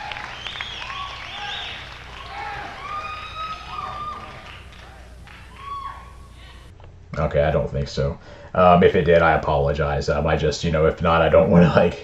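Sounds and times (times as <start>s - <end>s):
audience applause: 0.0s - 6.2s
audience cheering and whooping: 0.0s - 6.7s.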